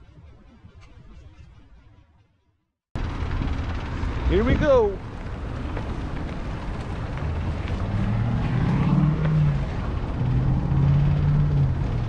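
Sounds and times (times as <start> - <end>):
traffic rumble: 3.0 - 12.0.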